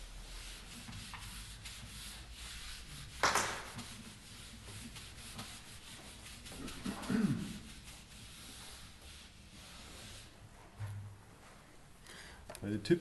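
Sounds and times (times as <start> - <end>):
eraser rubbing on whiteboard: 0.0 - 10.3.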